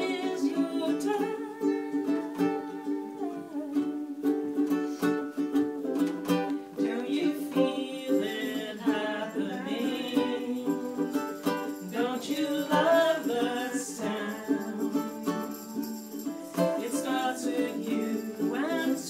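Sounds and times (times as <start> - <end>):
woman singing: 0.0 - 4.7, 6.8 - 19.0
ukulele strumming: 0.0 - 19.0.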